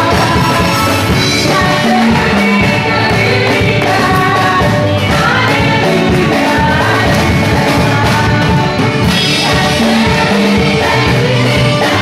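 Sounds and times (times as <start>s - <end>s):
instruments with steady beat: 0.0s - 12.0s
voices singing gospel song: 0.0s - 12.0s.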